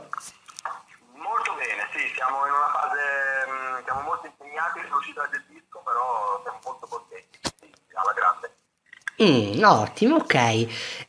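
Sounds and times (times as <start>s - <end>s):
person talking over telephone: 1.1s - 8.6s.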